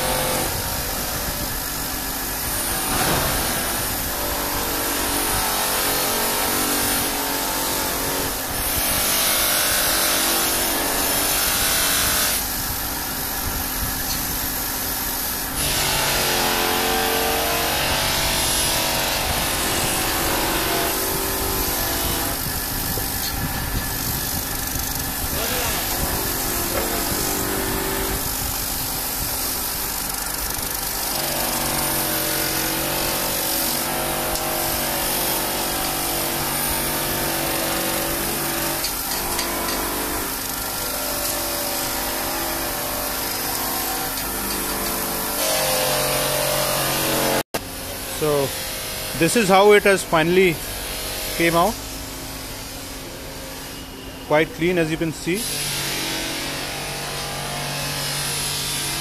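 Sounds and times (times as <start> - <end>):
polishing motor hum: 0.0 - 52.3.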